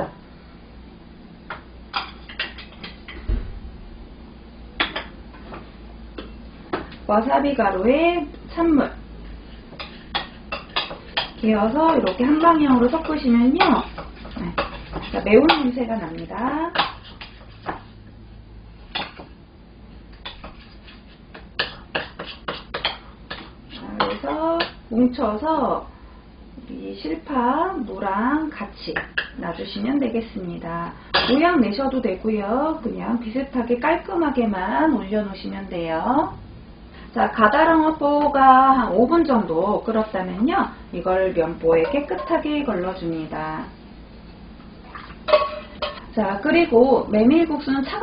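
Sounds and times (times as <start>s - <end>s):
ceramic tableware clinking: 45.3s - 46.0s.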